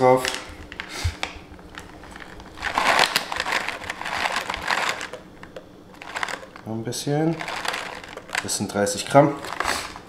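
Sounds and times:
dried fruit and nuts rattling into bowl: 1.6s - 10.0s.

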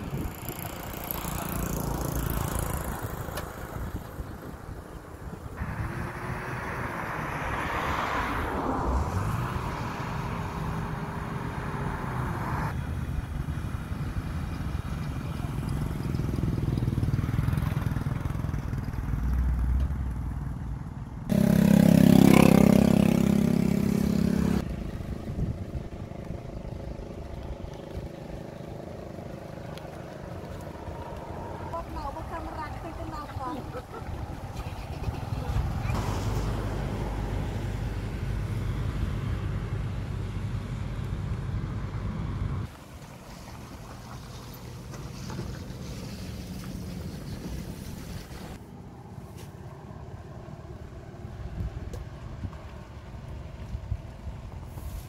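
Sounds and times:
wind on microphone: 0.0s - 1.0s, 23.2s - 28.1s
vehicle engine running: 12.8s - 49.1s.

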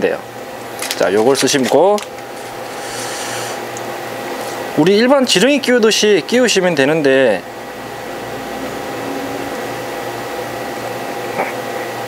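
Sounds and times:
steady machine hum: 0.0s - 12.0s
hiss: 2.7s - 3.6s.

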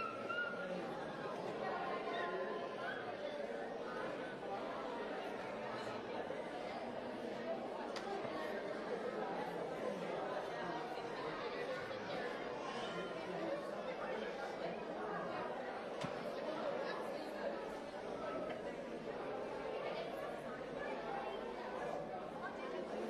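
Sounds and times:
congregation talking: 0.0s - 23.0s.

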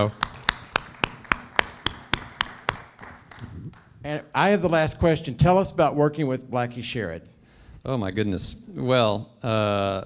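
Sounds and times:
person clapping close: 0.0s - 3.9s
audience clapping: 0.0s - 4.0s.

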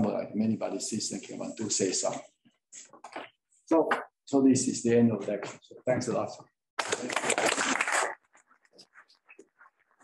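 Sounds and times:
audience applauding: 6.8s - 8.2s.

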